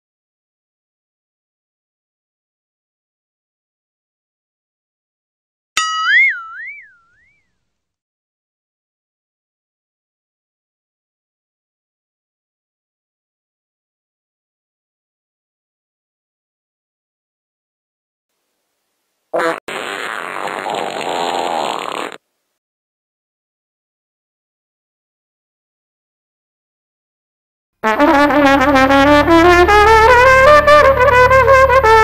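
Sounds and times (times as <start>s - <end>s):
cartoon boing sound effect: 5.8s - 7.3s
fart sound effect: 19.4s - 22.2s.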